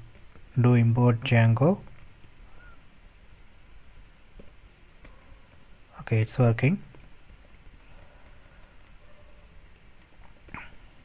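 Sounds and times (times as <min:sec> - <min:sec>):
computer keyboard clicks: 0:04.4 - 0:05.6.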